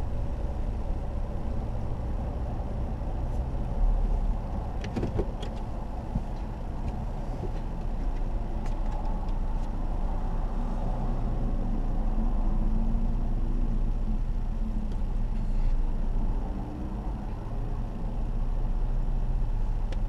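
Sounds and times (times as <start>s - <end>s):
car engine low rumble: 0.0s - 20.0s.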